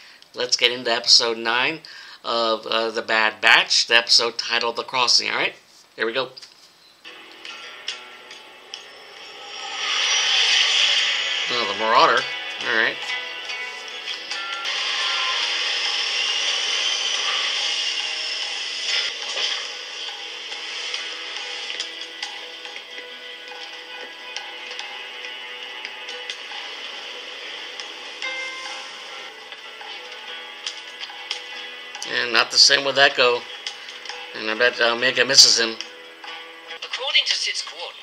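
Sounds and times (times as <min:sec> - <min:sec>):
spaceship rushing: 0:08.6 - 0:13.2.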